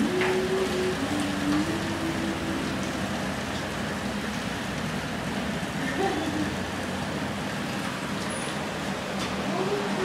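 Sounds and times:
elevator hum: 0.0s - 10.0s.

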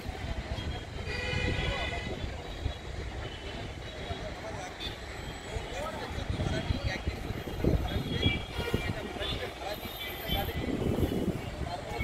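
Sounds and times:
distant traffic: 0.0s - 12.0s
faint background voices: 0.0s - 12.0s
wind rumble on microphone: 5.9s - 9.7s, 10.3s - 12.0s.

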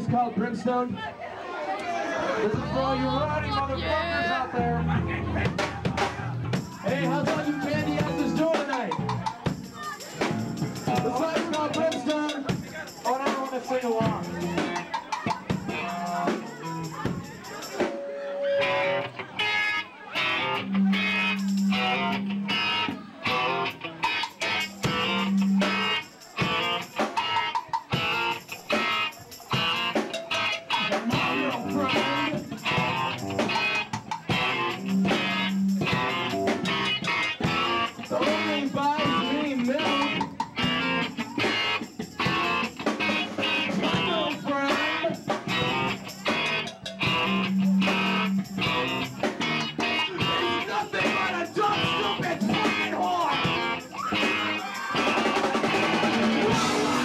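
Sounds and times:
live rock band playing: 2.4s - 57.0s
electric guitar: 2.5s - 57.0s.

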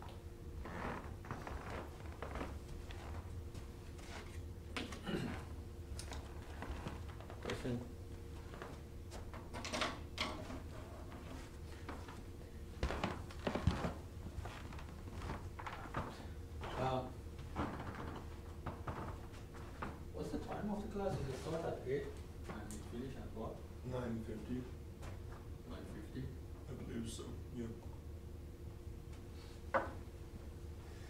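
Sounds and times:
steady electrical hum: 0.0s - 31.0s.

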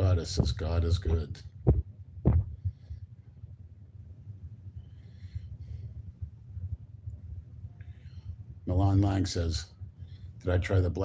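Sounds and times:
low hum with faint pulsing: 0.0s - 11.0s
short low thump: 1.7s - 2.6s.

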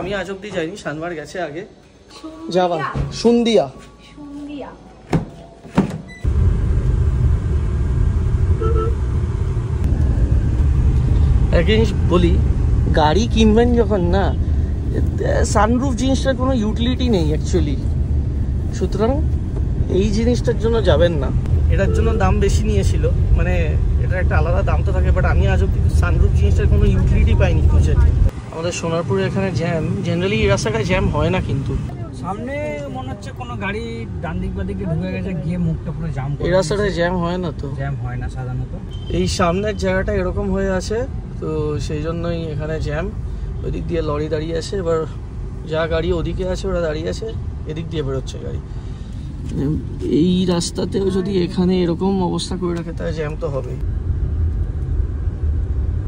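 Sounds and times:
car driving rumble: 6.0s - 56.0s
car horn toot: 8.6s - 9.0s, 21.7s - 22.6s, 38.9s - 39.4s
man talking: 19.9s - 48.6s.

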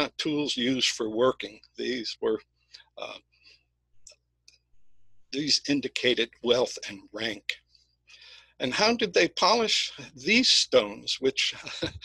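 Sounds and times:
man saying uh: 0.0s - 2.4s, 5.4s - 7.6s, 8.6s - 12.0s.

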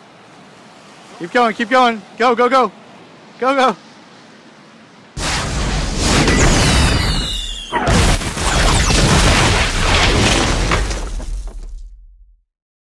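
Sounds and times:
explosion blasts: 5.2s - 12.3s
high falling whistle: 6.2s - 9.0s
rumble and crackle: 7.9s - 12.4s.

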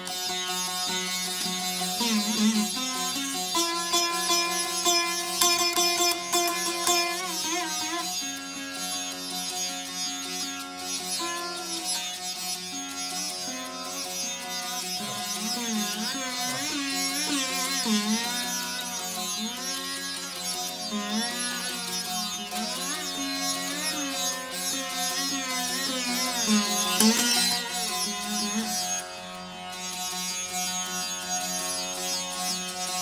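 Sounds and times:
veena playing with drone strings: 0.0s - 33.0s.

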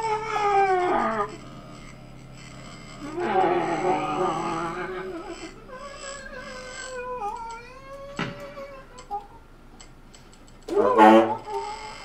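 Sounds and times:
tenor saxophone wailing: 0.0s - 1.4s, 3.0s - 7.4s, 10.7s - 11.8s.

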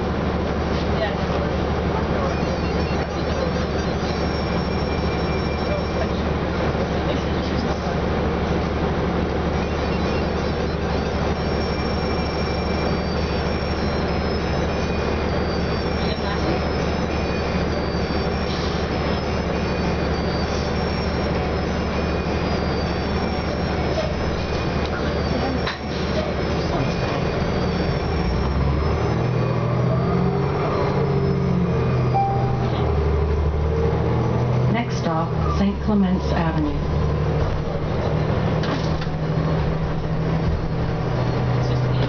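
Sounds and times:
bus engine idling hum: 0.0s - 42.0s.

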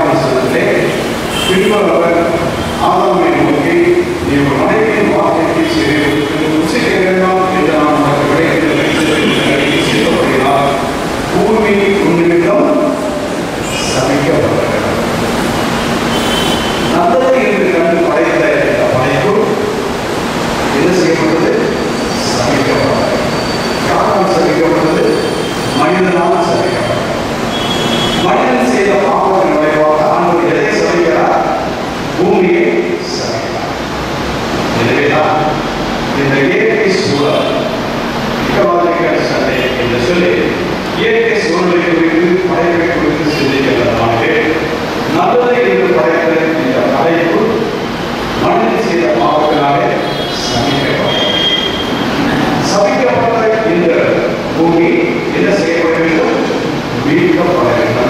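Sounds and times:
man preaching over microphone: 0.0s - 15.2s, 16.8s - 19.9s, 20.7s - 27.4s, 28.2s - 33.9s, 34.7s - 58.0s.

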